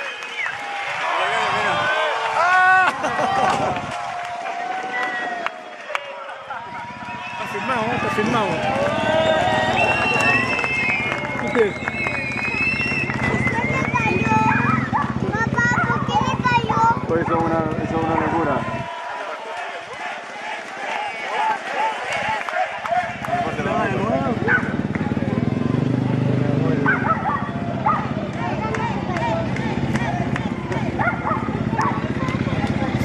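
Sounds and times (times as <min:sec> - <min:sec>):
spectators' voices: 0:00.0 - 0:33.0
motorcycle engine running: 0:06.6 - 0:18.9, 0:22.8 - 0:33.0.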